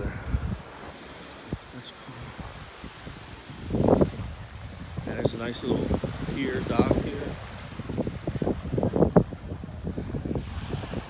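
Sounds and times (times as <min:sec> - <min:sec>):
small waves washing onto sand: 0:00.0 - 0:11.0
wind buffeting microphone: 0:00.0 - 0:11.0.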